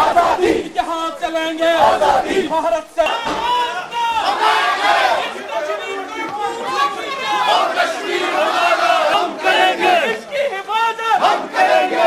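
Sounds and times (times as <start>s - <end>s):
crowd shouting slogans: 0.0s - 12.0s.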